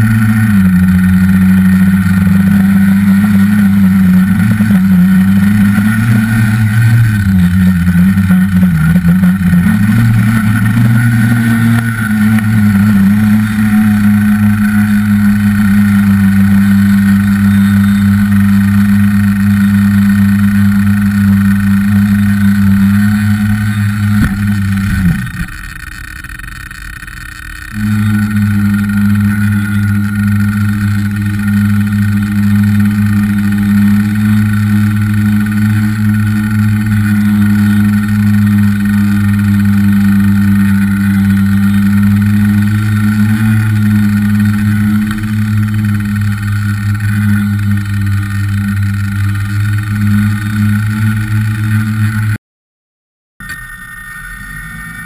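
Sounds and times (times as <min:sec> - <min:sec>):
drone motors humming: 0:00.0 - 0:52.4, 0:53.4 - 0:55.0.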